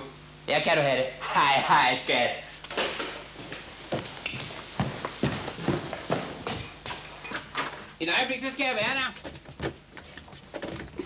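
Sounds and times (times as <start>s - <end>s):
hurrying footsteps: 3.2s - 7.2s.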